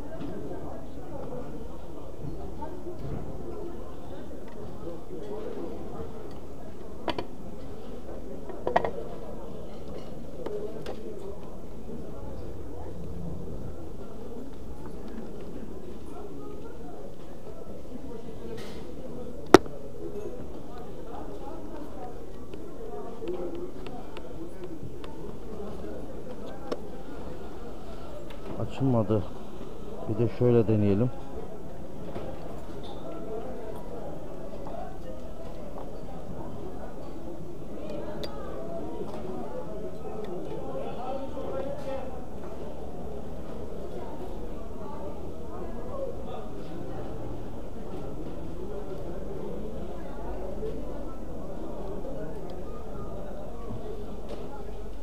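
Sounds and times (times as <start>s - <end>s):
busy market hum: 0.0s - 30.4s, 42.0s - 55.0s
crowd chatter: 0.0s - 55.0s.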